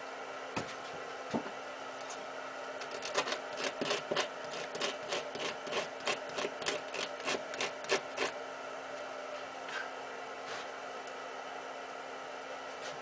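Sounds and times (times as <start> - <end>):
steady low hum: 0.0 - 13.0
scratchy clicks of wire work: 2.8 - 8.4.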